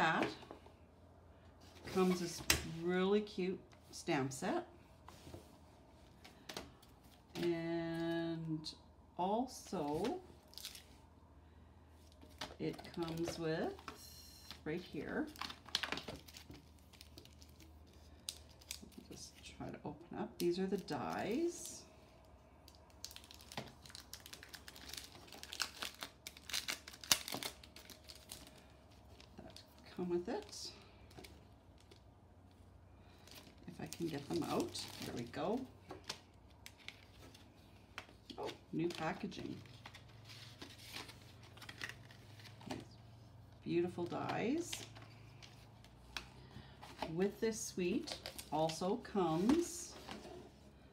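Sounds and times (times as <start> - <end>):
low steady hum: 0.0 - 50.9
plastic package crinkling: 15.3 - 19.0, 22.7 - 29.8, 33.1 - 42.9, 48.0 - 48.8.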